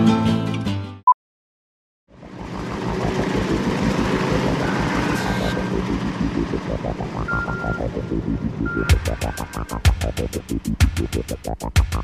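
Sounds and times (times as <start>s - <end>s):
noisy wash: 2.1s - 10.6s
fast low throbbing pulse: 2.1s - 12.0s
short high held tone: 4.3s - 9.5s.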